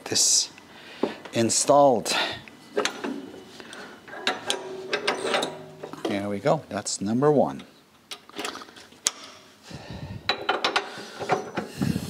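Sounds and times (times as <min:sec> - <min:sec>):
metal handling noise: 0:02.7 - 0:06.4.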